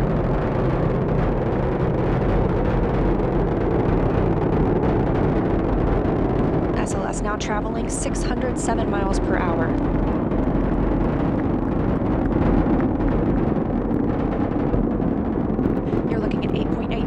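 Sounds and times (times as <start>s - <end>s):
rocket engines low rumble: 0.0s - 17.0s.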